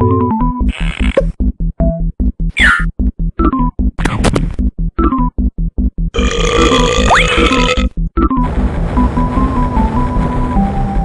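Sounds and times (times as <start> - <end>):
cartoon belch: 6.2 - 7.9.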